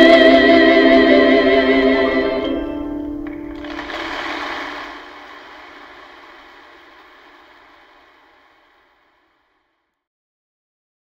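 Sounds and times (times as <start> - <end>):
audience applause: 3.2 - 9.7.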